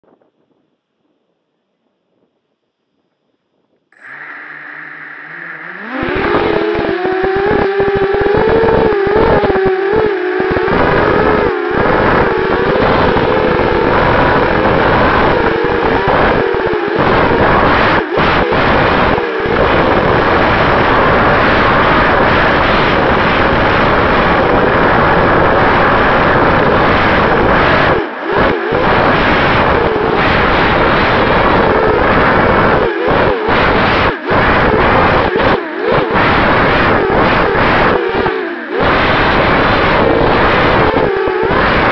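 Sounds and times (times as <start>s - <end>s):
quadcopter motors and propellers: 3.9s - 41.9s.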